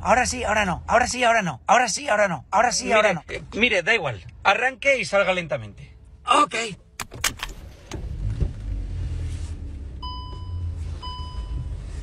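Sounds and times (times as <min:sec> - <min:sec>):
car door clicks and knocks: 0:07.0 - 0:08.0.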